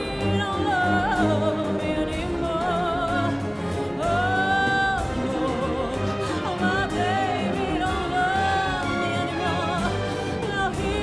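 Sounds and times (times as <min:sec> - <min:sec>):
drums: 0:00.0 - 0:11.0
symphony orchestra: 0:00.0 - 0:11.0
woman singing a slow ballad: 0:00.0 - 0:11.0.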